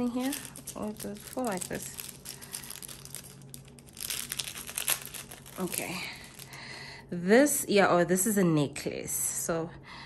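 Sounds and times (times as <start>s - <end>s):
plastic bag crinkling: 0.0s - 6.8s.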